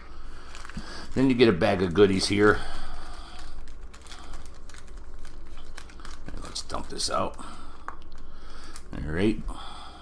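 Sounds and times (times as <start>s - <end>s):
plastic bag crinkling: 0.2s - 9.0s.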